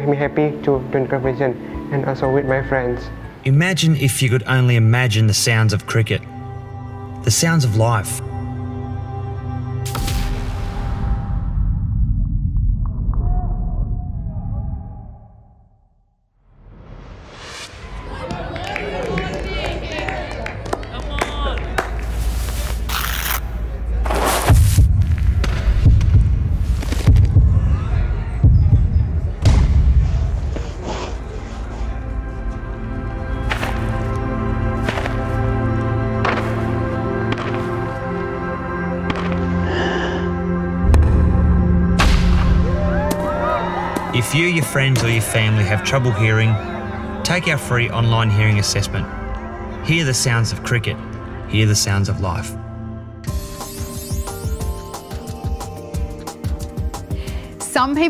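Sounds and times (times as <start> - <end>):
slow orchestral music: 0.0 - 11.3, 30.8 - 58.0
sharp inhale: 39.6 - 40.4, 57.0 - 57.6.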